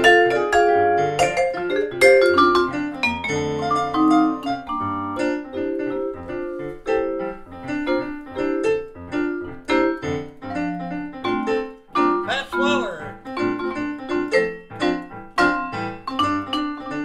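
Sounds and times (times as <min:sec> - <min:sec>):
jazz piano solo: 0:00.0 - 0:17.0
person speaking: 0:12.3 - 0:13.2.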